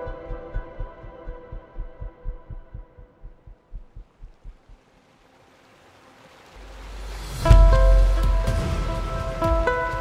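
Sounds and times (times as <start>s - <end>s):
heartbeat thuds: 0.1s - 4.8s.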